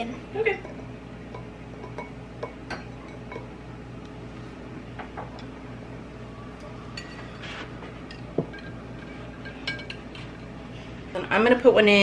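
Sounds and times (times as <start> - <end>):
low steady hum: 0.0 - 12.0
metal spoon clinking glass: 0.6 - 3.5, 6.6 - 7.4, 8.1 - 10.0.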